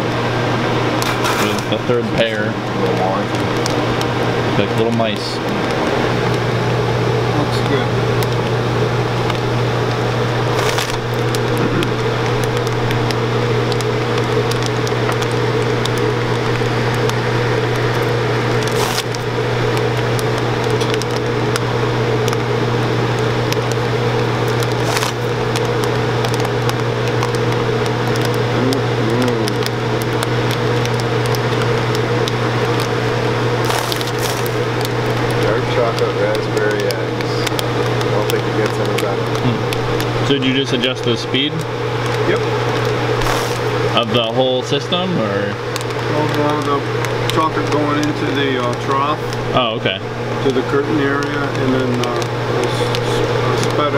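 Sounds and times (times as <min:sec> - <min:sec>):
machine motor humming: 0:00.0 - 0:53.9
air blower rushing: 0:16.8 - 0:20.0, 0:42.3 - 0:44.4.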